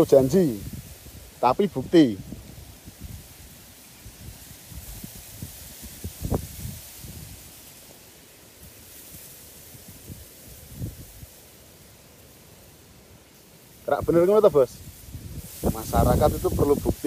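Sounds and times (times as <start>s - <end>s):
wind on microphone: 0.0s - 11.4s, 13.9s - 17.0s
plants rustling: 0.0s - 17.0s.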